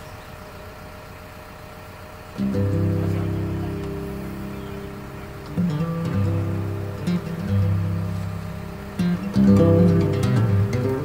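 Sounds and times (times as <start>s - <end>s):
low engine-like rumble: 0.0s - 11.0s
faint thin hum: 2.4s - 11.0s.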